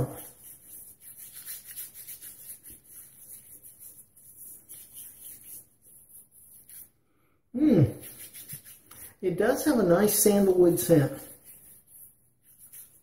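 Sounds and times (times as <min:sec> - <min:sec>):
wet hands rubbing stubble: 0:00.0 - 0:07.0, 0:07.7 - 0:13.0.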